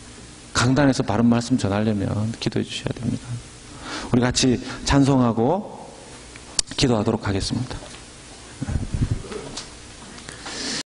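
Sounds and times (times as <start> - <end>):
man speaking into a microphone: 0.6 - 3.4, 4.1 - 6.1, 6.7 - 7.9.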